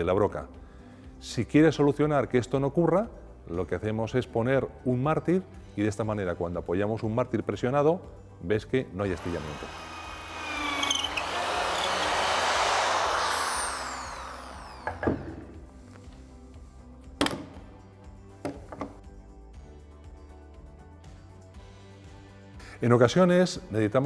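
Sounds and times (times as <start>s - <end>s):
background music: 0.0s - 24.0s
electric drill boring into wood: 9.1s - 15.4s.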